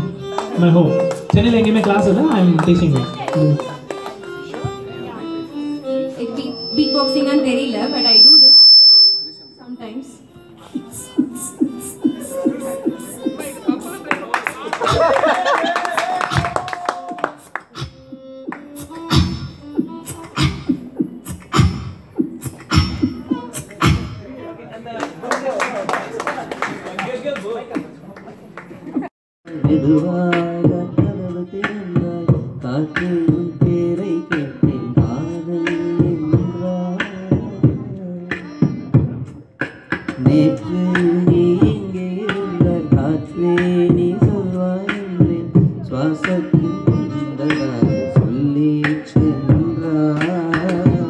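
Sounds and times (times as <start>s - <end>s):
beatboxing through a microphone: 0.0s - 7.2s, 10.4s - 15.2s, 16.2s - 16.6s, 17.2s - 24.4s, 28.8s - 51.0s
violin long note: 0.0s - 10.6s.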